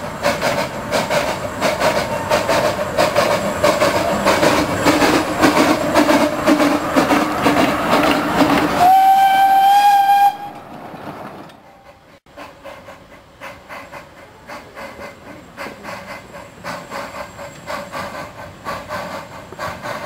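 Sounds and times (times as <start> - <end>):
steam locomotive clattering past: 0.0 - 20.0
steam whistle blast: 8.8 - 10.6.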